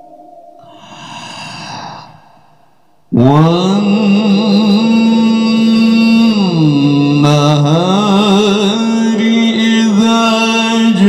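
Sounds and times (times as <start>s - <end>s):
breath into microphone: 0.6s - 2.9s
man reciting through a loudspeaker: 3.1s - 11.0s.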